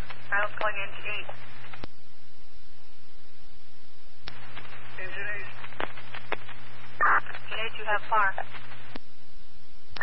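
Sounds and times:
radio hiss: 0.0 - 1.9, 4.3 - 9.0
low hum: 0.0 - 10.0
radio transmission clicks: 4.2 - 9.1.

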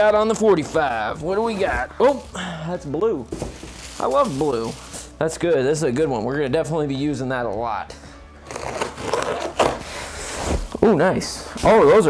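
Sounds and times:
cardboard rasping and scraping: 8.4 - 10.8
packing tape tearing: 8.4 - 10.8.

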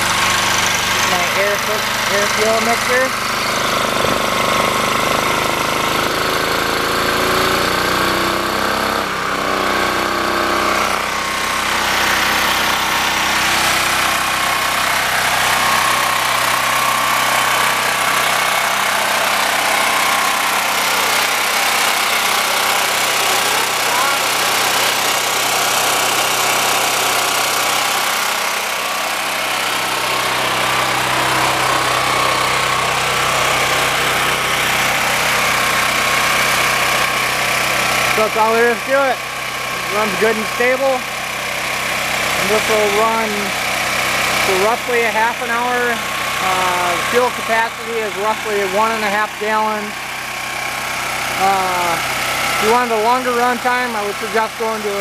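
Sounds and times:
generator engine humming: 0.0 - 55.0.

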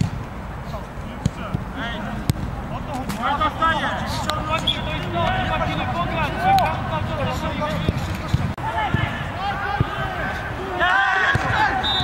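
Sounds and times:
players shouting: 1.3 - 12.0.

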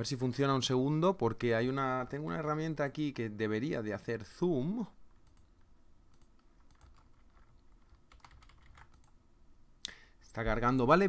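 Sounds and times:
computer keyboard clicks: 5.2 - 5.5, 6.1 - 9.2.

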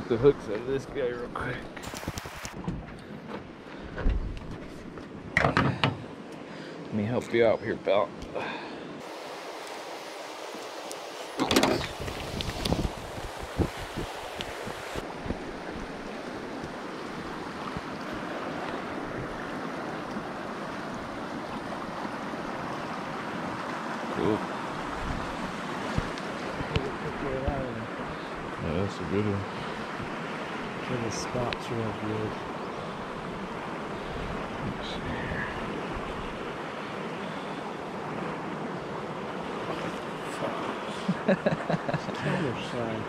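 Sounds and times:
river rushing over rocks: 9.0 - 41.1.

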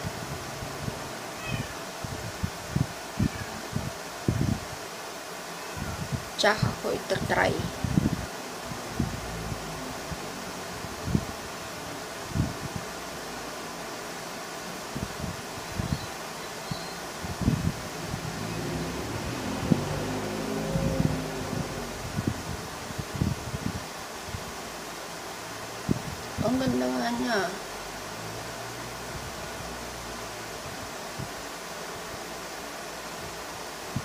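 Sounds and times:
fan-like background noise: 0.0 - 34.0.

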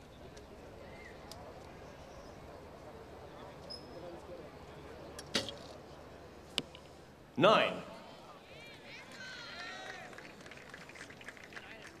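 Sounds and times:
arrow striking target: 5.3 - 5.6.

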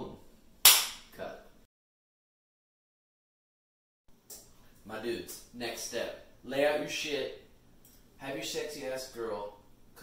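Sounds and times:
loud sharp smack: 0.6 - 1.1.

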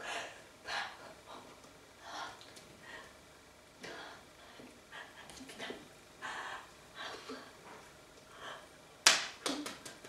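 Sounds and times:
hands slapping together: 9.0 - 10.0.

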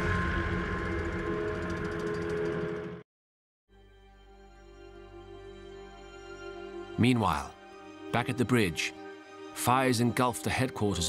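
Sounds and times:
tank engines and tracks: 0.0 - 3.0
background music: 3.7 - 11.0.

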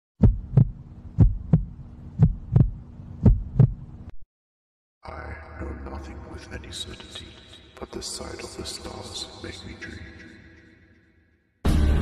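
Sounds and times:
heartbeat double thumps: 0.2 - 3.9
faint steady hum: 0.2 - 4.1.

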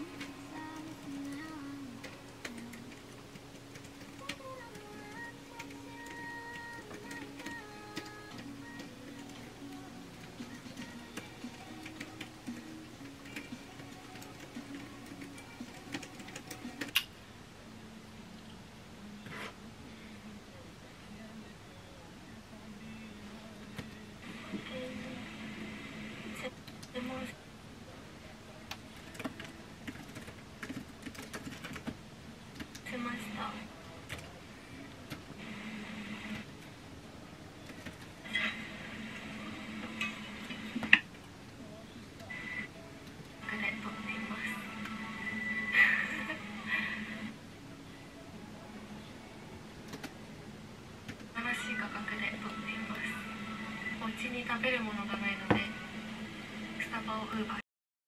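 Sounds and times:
soft slow background music: 0.0 - 26.6, 27.3 - 57.6
typing on computer keyboard: 0.2 - 9.5, 10.5 - 17.1, 29.0 - 32.0.

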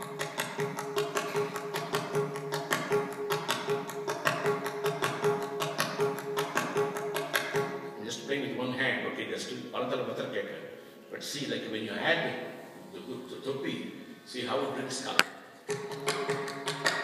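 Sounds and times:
hand drum fast strokes: 0.0 - 7.9, 15.7 - 17.0.

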